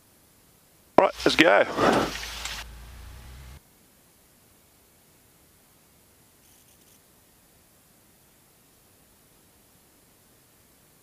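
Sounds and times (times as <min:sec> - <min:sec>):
faint audio line hiss: 0:00.0 - 0:11.0
airplane engine hum: 0:01.1 - 0:03.6.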